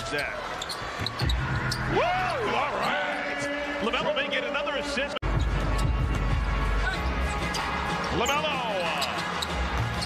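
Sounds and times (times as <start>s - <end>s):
crowd noise: 0.0s - 10.0s
sneaker squeaks on court: 0.6s - 1.8s.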